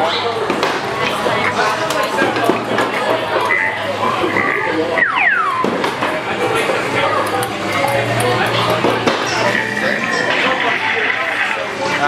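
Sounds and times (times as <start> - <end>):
game-machine music: 6.5 - 11.8.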